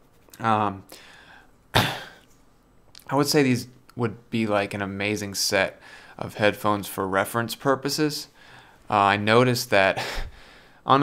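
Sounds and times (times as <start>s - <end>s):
man coughing: 1.7s - 2.2s.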